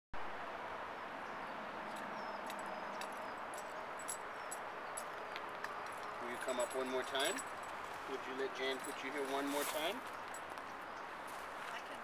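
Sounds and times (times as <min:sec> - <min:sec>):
outdoor background hiss: 0:00.2 - 0:12.0.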